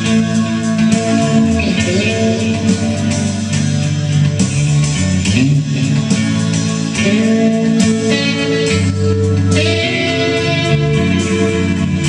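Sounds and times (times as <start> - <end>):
drums: 0.0 - 12.0
electric guitar playing: 0.0 - 12.0.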